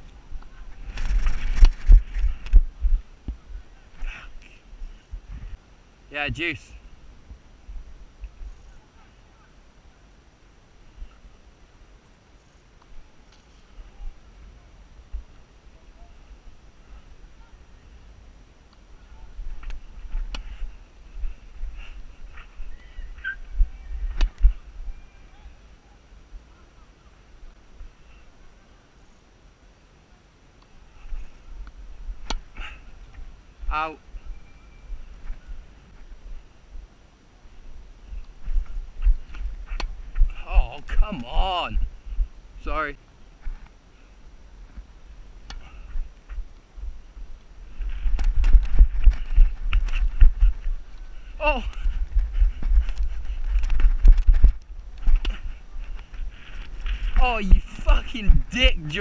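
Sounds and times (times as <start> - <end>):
wind buffeting microphone: 0.0 - 3.7, 45.0 - 59.0
wind rumble on camera: 0.0 - 5.6, 13.0 - 25.6, 30.9 - 42.6, 43.4 - 59.0.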